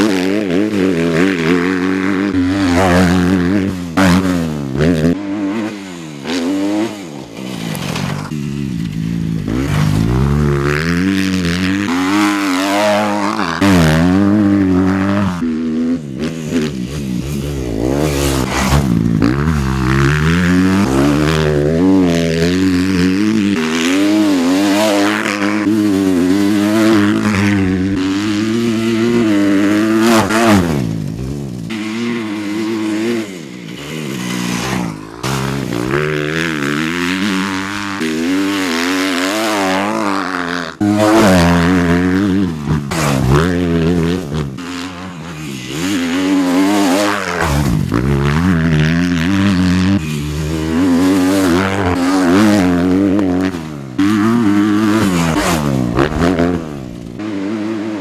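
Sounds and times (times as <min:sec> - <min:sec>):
motocross bike engine revving: 0:00.0 - 0:58.0.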